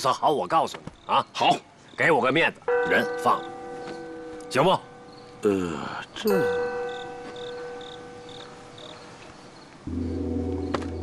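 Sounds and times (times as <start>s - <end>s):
crickets chirping: 0.0s - 11.0s
low music drone: 9.8s - 11.0s
struck metallic tone: 9.9s - 11.0s.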